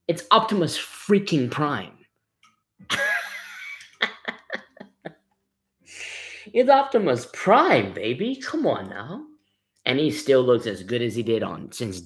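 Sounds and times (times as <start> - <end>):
man's breathy laugh: 2.9 - 5.1.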